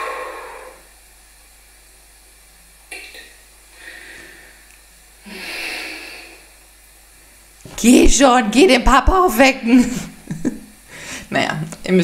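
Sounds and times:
woman breathing heavily: 3.7 - 6.6, 10.9 - 11.3.

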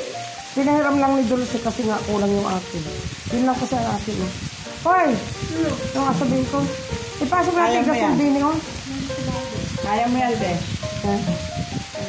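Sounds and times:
background music: 0.0 - 12.0
meat sizzling on a grill: 0.0 - 12.0
people talking and exclaiming: 3.4 - 11.4.

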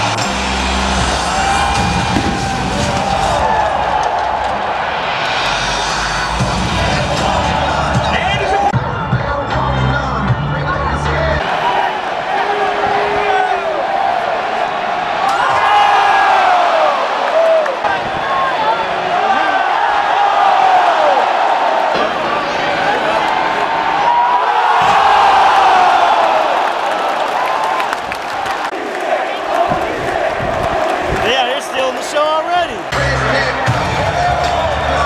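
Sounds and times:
stadium crowd cheering: 0.0 - 35.0.

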